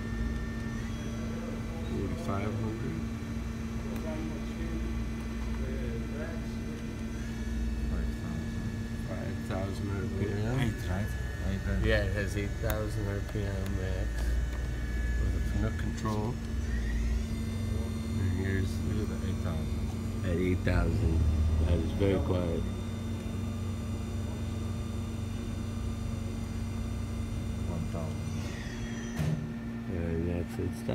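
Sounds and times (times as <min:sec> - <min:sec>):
high spindle whine: 0:00.0 - 0:30.9
machine spindle humming: 0:00.0 - 0:30.9.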